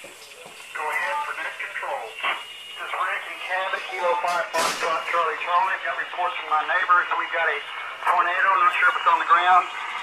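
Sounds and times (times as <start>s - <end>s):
radio noise burst: 0.3s - 10.0s
voice over two-way radio: 0.7s - 9.7s.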